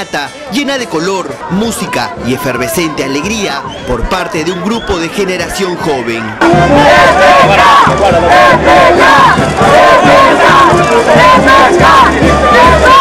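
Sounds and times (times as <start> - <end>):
crowd chanting and shouting: 0.0 - 13.0
music: 1.4 - 13.0.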